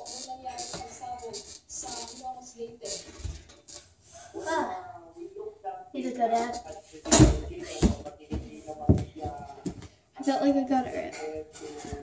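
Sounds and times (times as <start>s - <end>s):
thumps of feet on a padded mat: 7.1s - 9.9s.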